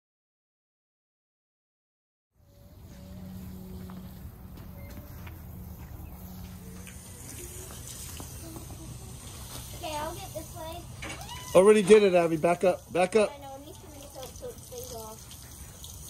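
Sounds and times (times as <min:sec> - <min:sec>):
steady low hum: 0:02.4 - 0:11.1.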